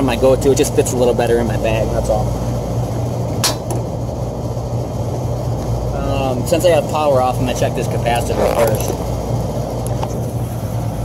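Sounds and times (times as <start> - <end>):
machinery hum and rumble: 0.0 - 11.0.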